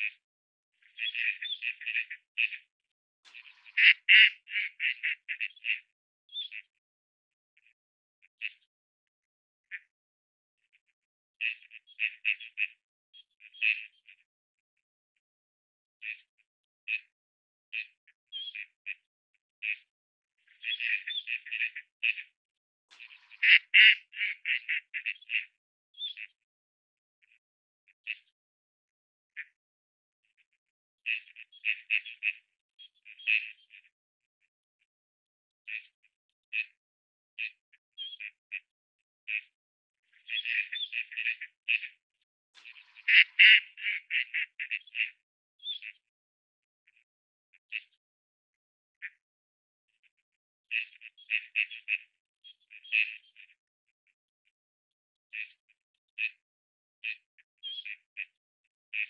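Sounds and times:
bird chattering calls: 0.8s - 2.6s, 3.4s - 6.6s, 20.5s - 22.2s, 23.0s - 26.3s, 40.1s - 41.9s, 42.6s - 45.9s
ducks quacking: 3.3s - 5.9s, 23.0s - 26.2s, 42.6s - 45.2s.

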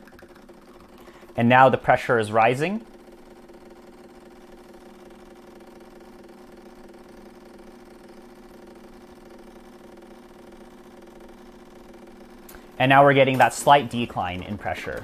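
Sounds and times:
espresso machine pump humming: 0.0s - 15.0s.

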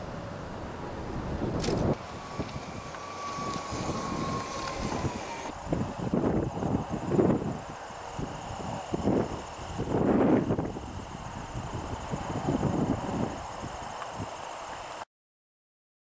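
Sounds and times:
faint whine dropping in pitch: 0.0s - 15.0s
wind buffeting microphone: 0.0s - 15.0s.

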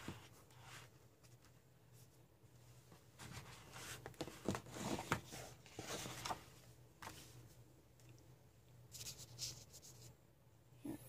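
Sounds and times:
heavy paper rustling and crackling: 3.2s - 7.4s.

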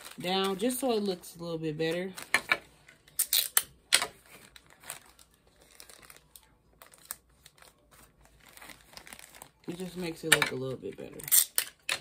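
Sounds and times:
cellophane wrapper crinkling: 0.0s - 12.0s.

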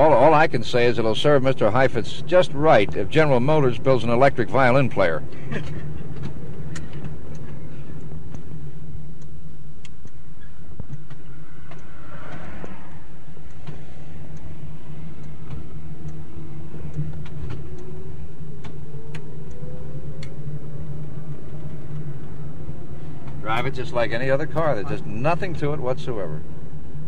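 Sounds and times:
faint motor whine: 0.0s - 27.0s
electric motor hum: 2.2s - 27.0s.

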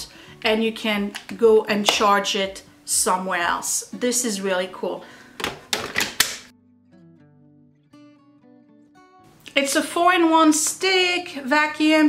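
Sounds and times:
plastic clicks and knocks: 5.4s - 6.5s
soft music with held notes: 6.5s - 12.0s.

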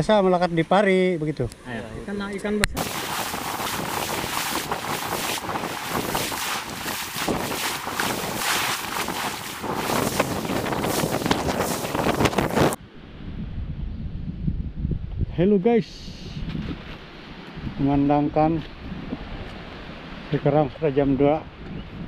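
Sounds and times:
waves washing onto beach: 2.8s - 12.8s
wind buffeting microphone: 2.8s - 15.4s, 16.2s - 19.8s, 21.4s - 22.0s.

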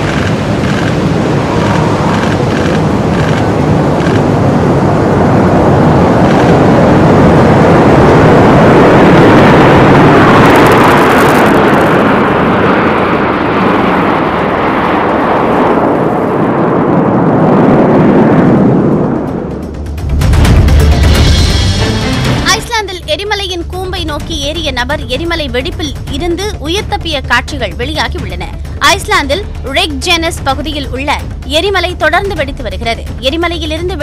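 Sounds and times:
jet engines flying past: 0.0s - 31.6s.

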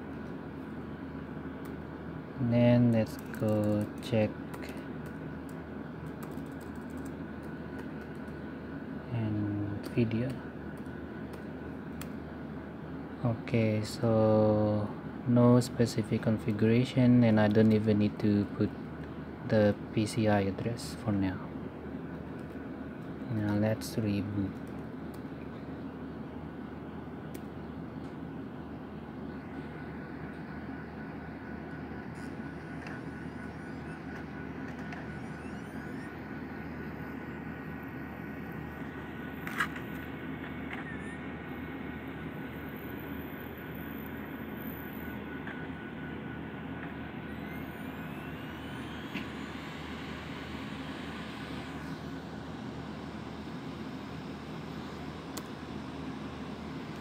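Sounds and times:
constant room hum: 0.0s - 57.0s.

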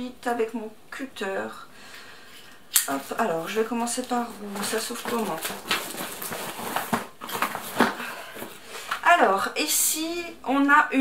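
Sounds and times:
packaging rustling: 2.9s - 9.0s.

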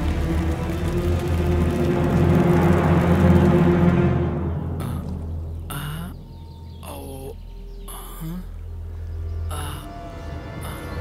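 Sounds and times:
tense film score drone: 0.0s - 11.0s.

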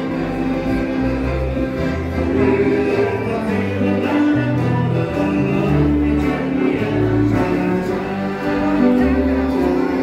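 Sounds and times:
guitar: 0.0s - 10.0s.

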